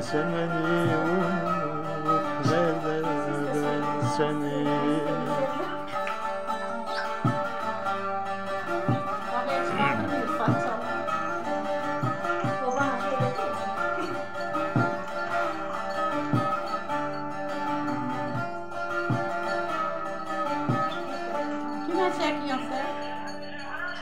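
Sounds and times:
long-necked lute plucked and strummed: 0.0 - 23.9.

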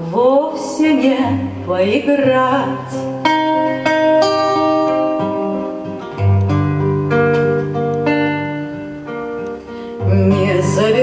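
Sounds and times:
classical acoustic guitar: 0.0 - 11.0.

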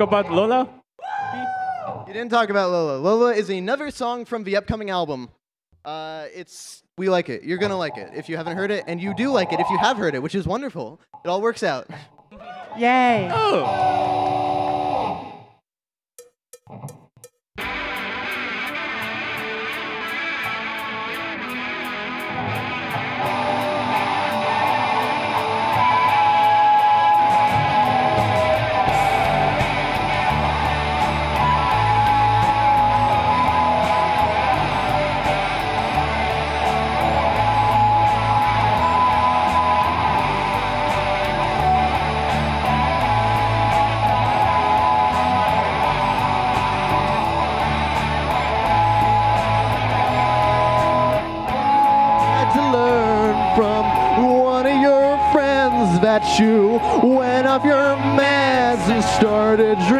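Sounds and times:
repeating bass line: 7.5 - 10.2, 22.4 - 59.9
electric guitars: 13.6 - 15.4, 17.6 - 59.9.

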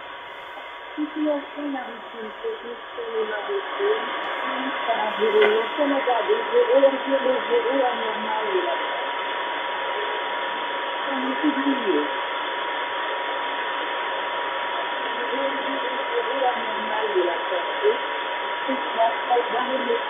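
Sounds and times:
radio static hiss: 0.0 - 20.0
weak voice on radio: 3.4 - 7.4.

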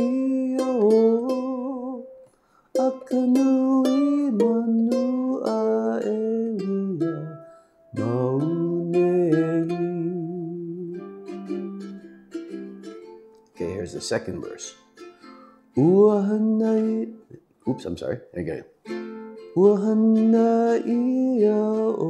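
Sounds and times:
man singing: 0.0 - 11.9, 13.6 - 14.8, 15.8 - 17.8, 19.5 - 22.0
ukulele strumming: 0.0 - 22.0.

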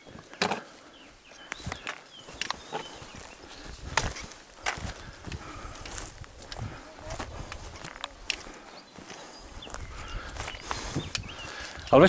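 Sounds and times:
footsteps on stony ground: 0.0 - 12.0.

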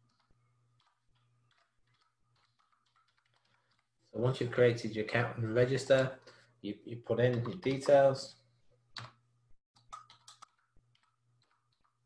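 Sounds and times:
computer keyboard keystrokes: 0.0 - 3.9, 9.0 - 9.2, 9.8 - 12.0.

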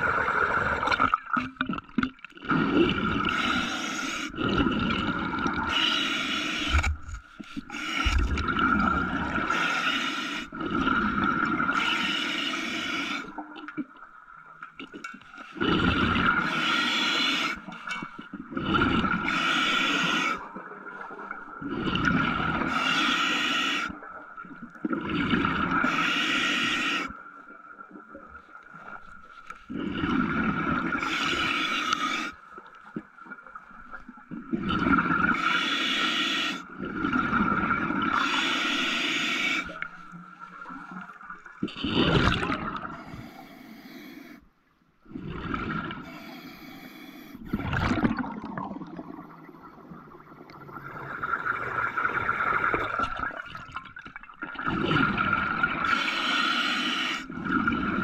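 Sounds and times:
diver breathing underwater: 2.5 - 13.4, 15.5 - 24.1, 25.0 - 27.2, 29.7 - 32.5, 34.6 - 40.2, 41.8 - 44.5, 45.1 - 48.4, 54.6 - 58.0.

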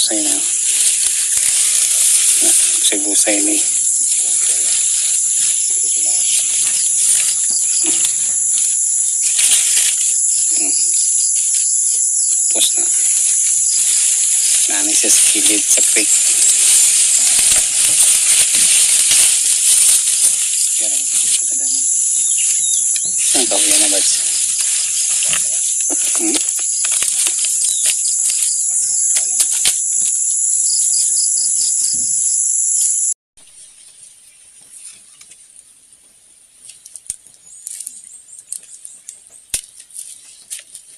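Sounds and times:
high-pitched insect chorus: 0.0 - 33.2.

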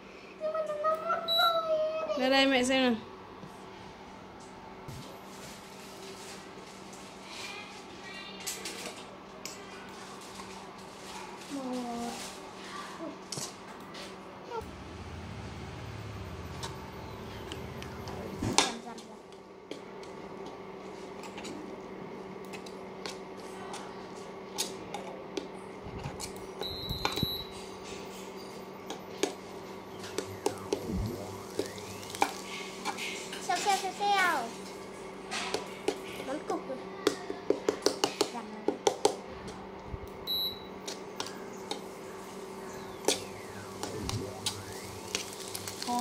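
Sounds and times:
steady low hum: 29.3 - 33.4, 41.3 - 46.0.

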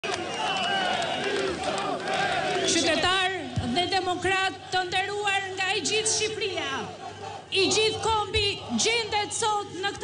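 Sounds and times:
crowd of protesters calling out: 0.0 - 10.0.

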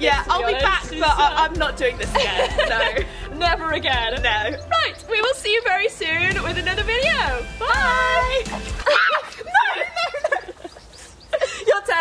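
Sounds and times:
women laughing and squealing: 0.3 - 6.1, 7.6 - 12.0.

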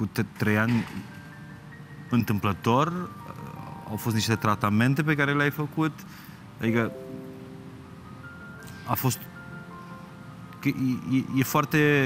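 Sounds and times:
soft music of sustained notes: 0.0 - 12.0.

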